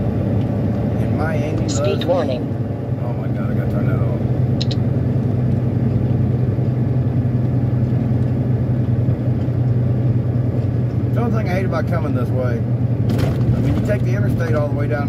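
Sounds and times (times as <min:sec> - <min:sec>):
diesel engine drone in cab: 0:00.0 - 0:15.0.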